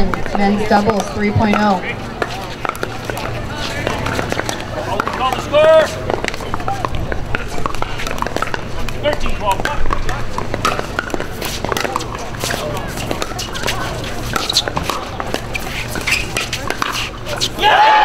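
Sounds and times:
paddles hitting plastic ball: 0:00.0 - 0:17.2
spectators murmuring: 0:00.0 - 0:18.0
crowd cheering loudly: 0:17.6 - 0:18.0.

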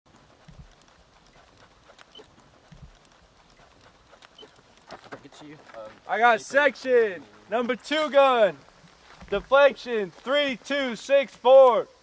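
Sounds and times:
quiet outdoor background: 0:00.1 - 0:12.0.

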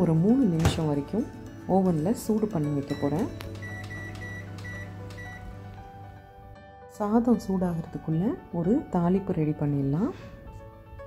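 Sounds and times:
microwave oven humming: 0:01.8 - 0:06.5
keypad beeps: 0:02.9 - 0:05.5.

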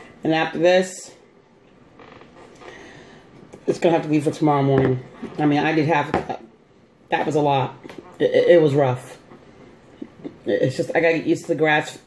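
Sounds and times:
faint creak: 0:01.9 - 0:02.9.

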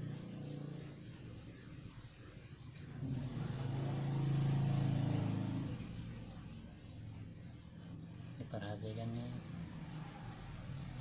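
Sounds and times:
passing vehicle engine hum: 0:00.0 - 0:11.0.

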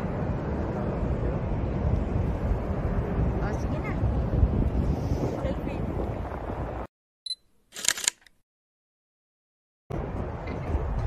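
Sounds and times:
camera shutter clicking: 0:07.7 - 0:08.3.

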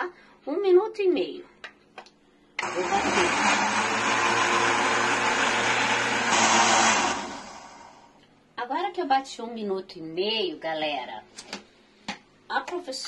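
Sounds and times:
electric blender running: 0:02.6 - 0:08.1.

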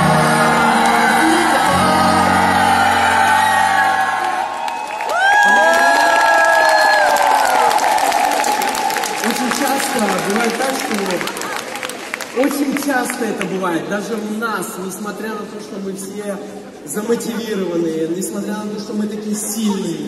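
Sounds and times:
audience whooping: 0:00.0 - 0:11.6
audience cheering and clapping: 0:00.0 - 0:13.4.

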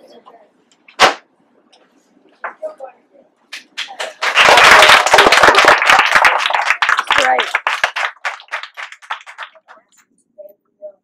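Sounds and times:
children clapping: 0:03.5 - 0:09.9.

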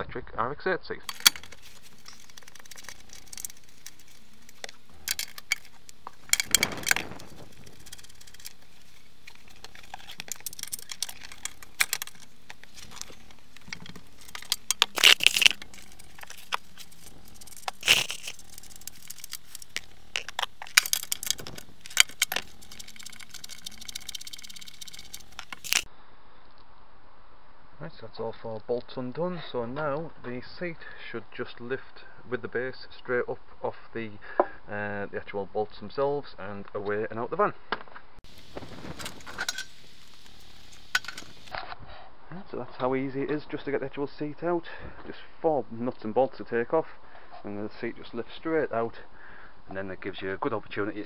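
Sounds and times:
hand tool clicking and rattling: 0:01.1 - 0:25.9, 0:38.4 - 0:41.5
nuts clinking set down: 0:01.1 - 0:25.9, 0:38.3 - 0:41.5.

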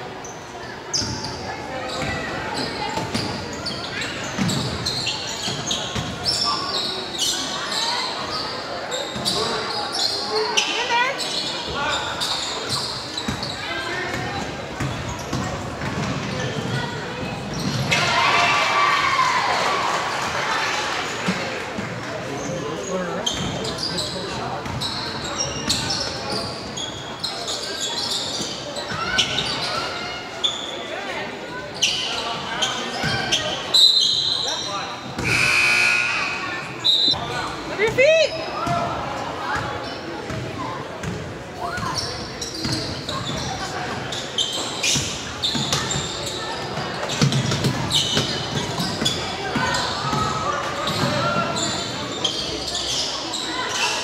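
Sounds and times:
sneakers squeaking: 0:00.1 - 0:18.1, 0:21.3 - 0:54.0
people calling out: 0:35.2 - 0:37.2.

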